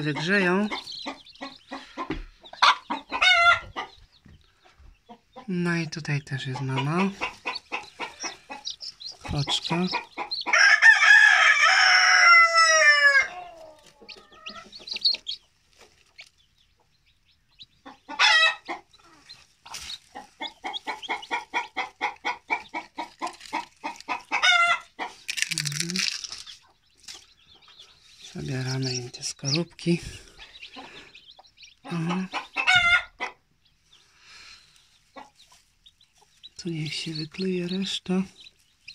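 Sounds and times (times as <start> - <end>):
hen clucking: 0.0 - 38.9
rooster crowing: 10.5 - 14.6.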